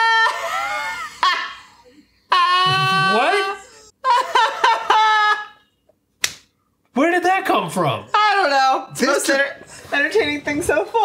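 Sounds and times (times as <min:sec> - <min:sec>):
high-pitched wavering cry: 0:02.3 - 0:03.9.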